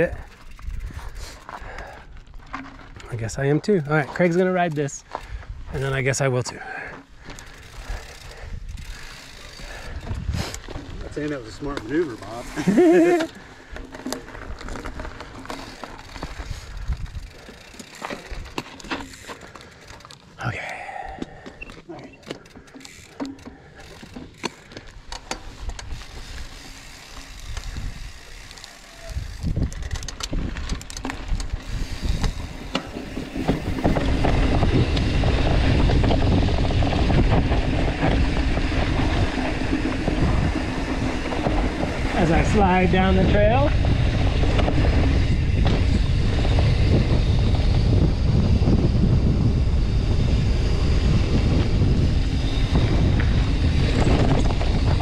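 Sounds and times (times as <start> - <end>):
wind rush on microphone: 0.0 - 2.4, 5.2 - 6.0, 7.2 - 15.2, 16.2 - 17.5, 27.3 - 55.0
bike clicks and rattles: 0.0 - 55.0
tyres crunching on gravel: 0.3 - 20.6.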